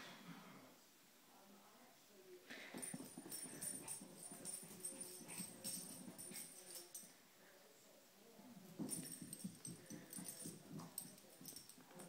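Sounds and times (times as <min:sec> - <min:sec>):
dog paws pattering on carpet: 0:02.8 - 0:07.0, 0:08.7 - 0:12.0
dog collar tags jingling: 0:02.8 - 0:07.1, 0:08.8 - 0:12.0.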